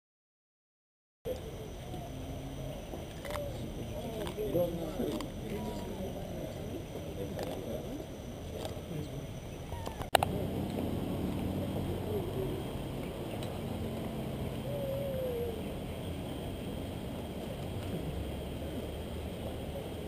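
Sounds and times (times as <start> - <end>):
outdoor background noise: 1.3 - 20.0
people chattering: 1.3 - 20.0.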